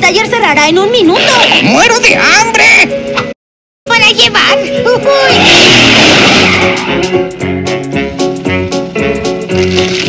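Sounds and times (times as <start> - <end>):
cartoon tyres screeching: 5.2 - 7.2.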